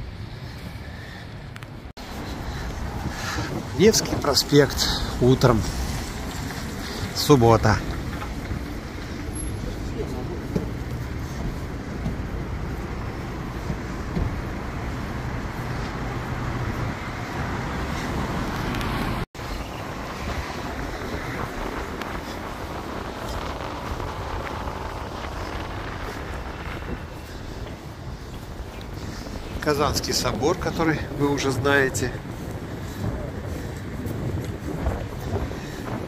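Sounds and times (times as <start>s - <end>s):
city road traffic: 0.0s - 36.0s.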